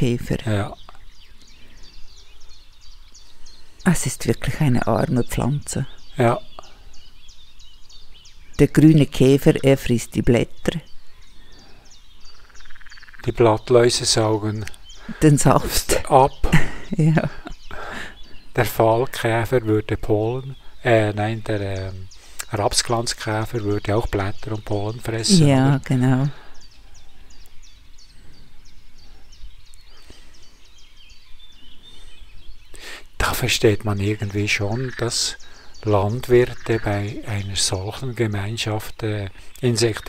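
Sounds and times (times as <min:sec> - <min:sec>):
bird chirping: 0:00.0 - 0:40.0.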